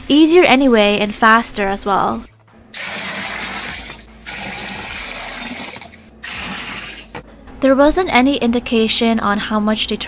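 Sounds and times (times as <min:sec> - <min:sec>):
water pouring into plastic tub: 0:02.8 - 0:07.1.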